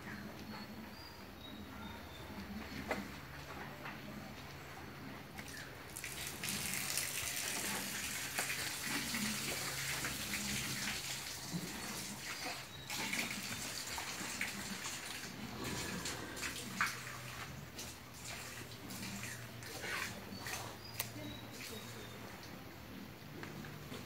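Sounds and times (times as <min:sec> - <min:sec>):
water splashing on concrete floor: 0:05.4 - 0:22.0.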